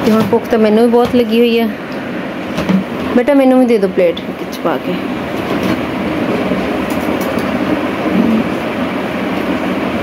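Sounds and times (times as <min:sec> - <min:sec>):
electric fan running: 0:00.0 - 0:10.0.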